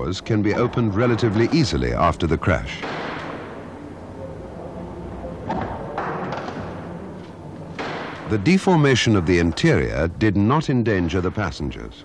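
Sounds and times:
low background noise: 0.0s - 12.0s.

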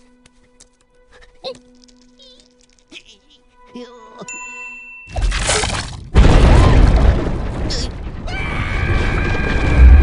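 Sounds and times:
loud rumbling cracking noise: 6.2s - 10.0s.

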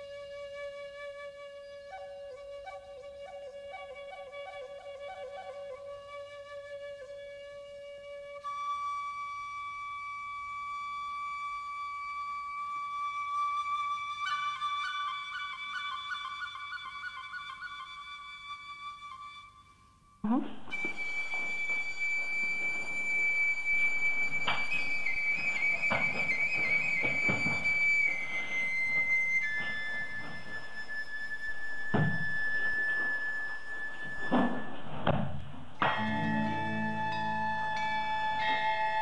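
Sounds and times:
solo flute music: 0.0s - 35.0s, 35.8s - 39.0s.

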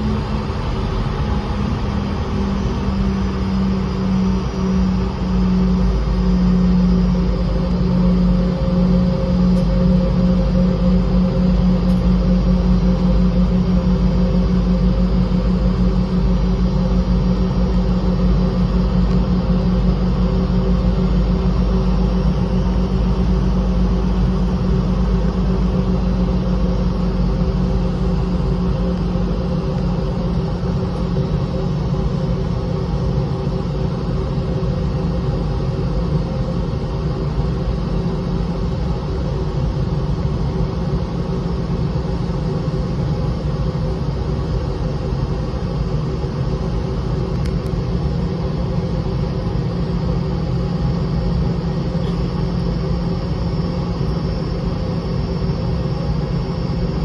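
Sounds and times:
aircraft engines rumbling: 0.0s - 57.0s
droning hum pulsing rapidly: 0.0s - 57.0s.

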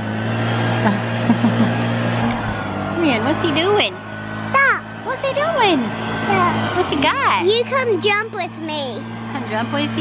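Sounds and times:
leaf blower running: 0.0s - 10.0s.

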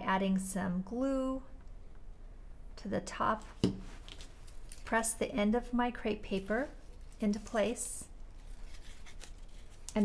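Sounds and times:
crepe paper rustling: 6.3s - 10.0s.

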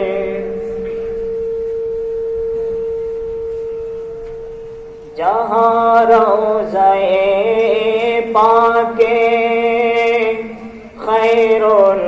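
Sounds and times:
man chanting devotional song: 0.0s - 0.8s, 5.1s - 12.0s.

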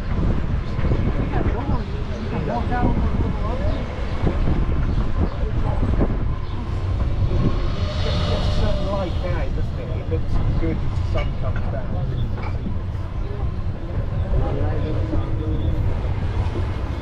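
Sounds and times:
shuttle cart rumbling along: 0.0s - 17.0s.

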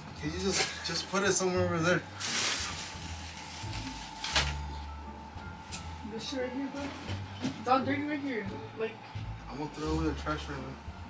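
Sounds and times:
faint background music: 0.0s - 11.0s
plastic bag rustling: 0.4s - 4.8s.

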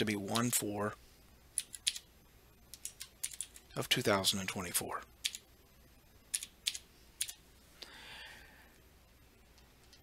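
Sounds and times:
computer keyboard typing: 1.6s - 2.1s, 2.7s - 3.7s, 5.2s - 5.4s, 6.3s - 7.4s.

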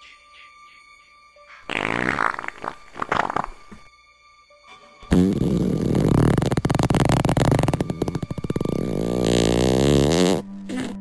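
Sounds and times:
fart sound effect: 1.7s - 3.9s, 5.1s - 11.0s.

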